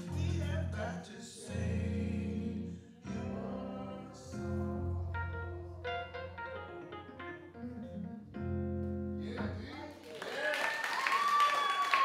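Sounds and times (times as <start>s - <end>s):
electric keyboard playing: 1.5s - 9.6s
audience applause: 9.7s - 12.0s
audience cheering: 10.0s - 12.0s.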